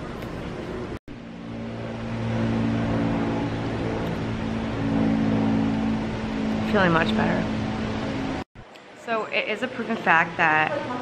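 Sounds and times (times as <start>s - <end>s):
motor humming: 1.1s - 8.5s.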